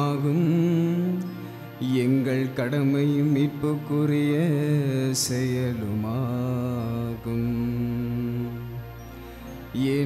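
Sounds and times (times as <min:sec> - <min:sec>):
man chanting a prayer: 0:00.0 - 0:10.0
steady low drone: 0:00.0 - 0:10.0.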